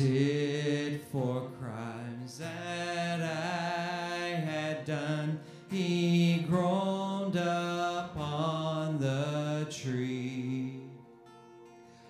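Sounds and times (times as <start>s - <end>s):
man singing a hymn: 0.0s - 11.0s
acoustic guitar: 0.0s - 12.0s.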